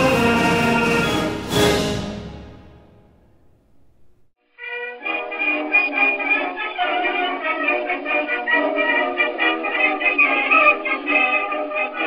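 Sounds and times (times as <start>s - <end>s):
band music old recording: 0.0s - 3.1s.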